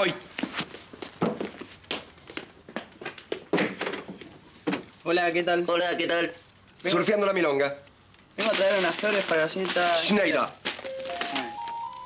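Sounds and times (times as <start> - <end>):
quick footsteps: 8.4 - 11.6.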